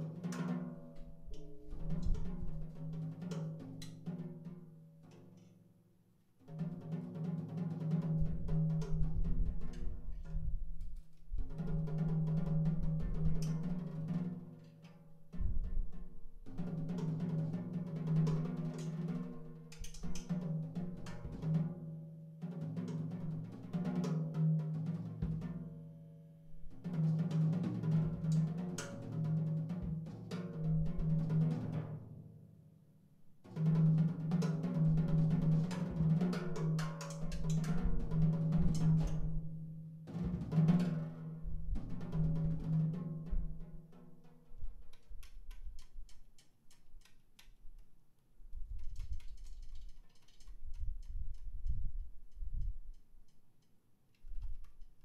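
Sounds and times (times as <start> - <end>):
jazz drum kit with cymbals: 33.5 - 41.2.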